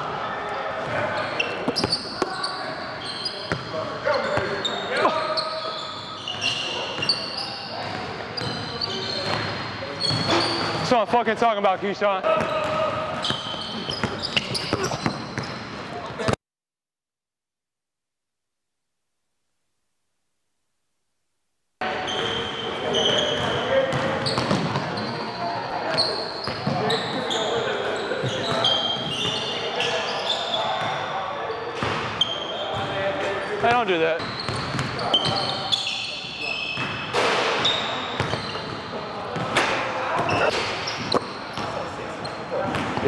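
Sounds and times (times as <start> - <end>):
sneakers squeaking on floor: 0.8 - 16.4, 21.8 - 43.0
basketballs bouncing: 12.3 - 15.9, 23.3 - 24.9, 33.6 - 35.5, 38.1 - 38.8, 42.6 - 43.0.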